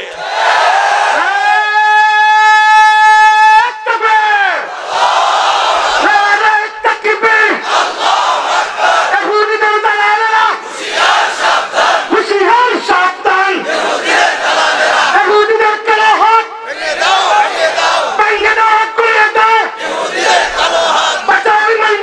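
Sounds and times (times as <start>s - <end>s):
man shouting through a microphone: 1.2s - 4.7s, 6.0s - 7.6s, 9.1s - 10.7s, 12.1s - 13.8s, 15.1s - 19.8s, 21.2s - 22.0s
crowd shouting back: 19.7s - 21.4s.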